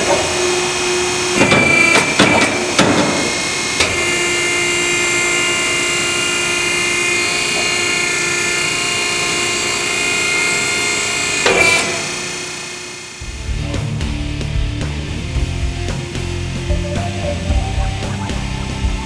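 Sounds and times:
electric motor running: 0:00.3 - 0:14.2
machine knock: 0:01.4 - 0:03.9.

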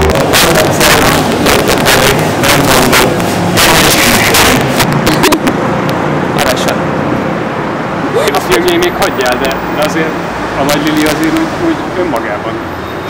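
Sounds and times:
loud steady hiss: 0:00.0 - 0:05.0
men talking: 0:00.0 - 0:07.3, 0:07.9 - 0:12.7
men laughing: 0:05.0 - 0:05.6.

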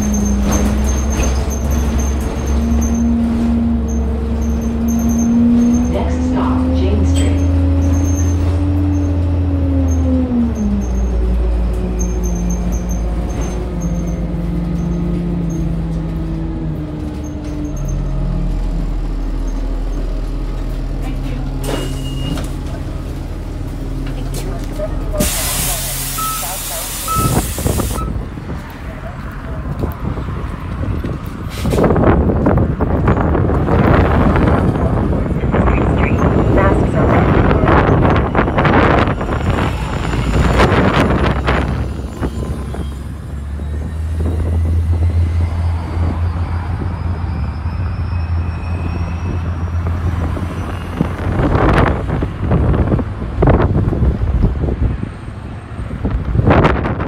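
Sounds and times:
bus engine and road rumble: 0:00.0 - 0:57.0
short beeps: 0:26.1 - 0:28.2.

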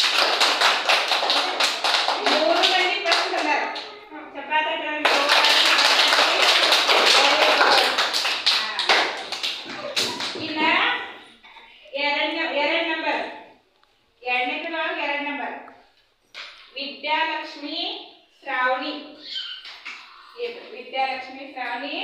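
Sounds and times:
children clapping: 0:00.0 - 0:04.0, 0:05.0 - 0:10.8, 0:19.6 - 0:20.2
children's voices: 0:01.2 - 0:11.7, 0:19.1 - 0:20.7.

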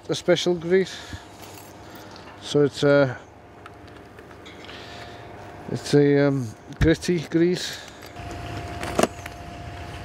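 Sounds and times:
motor running with whine: 0:00.0 - 0:10.0.

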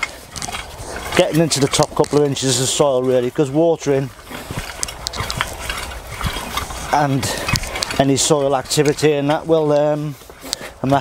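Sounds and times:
metal tines raking soil: 0:00.0 - 0:11.0
small clicks of stones: 0:04.3 - 0:06.8.

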